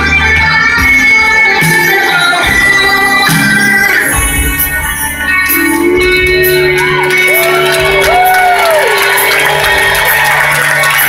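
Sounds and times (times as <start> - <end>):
live rock band music: 0.0 - 11.0.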